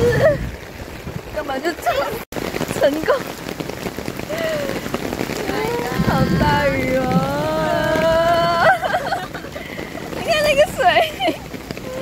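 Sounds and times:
torrential rain on road: 0:00.0 - 0:12.0.

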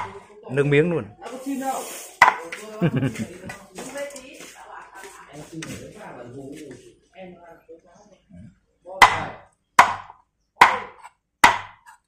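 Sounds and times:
low voices: 0:00.0 - 0:08.8
knife striking chopping board: 0:02.2 - 0:02.5, 0:09.0 - 0:12.0
laughter: 0:02.6 - 0:03.7.

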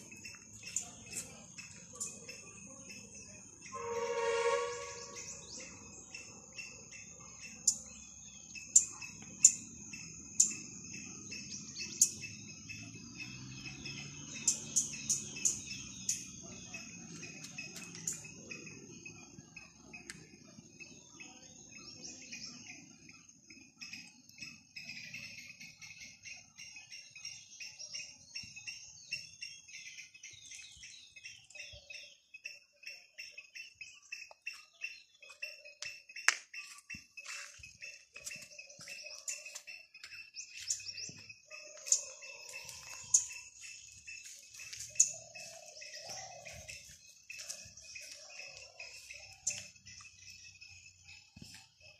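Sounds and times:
birds chirping: 0:00.0 - 0:51.9.

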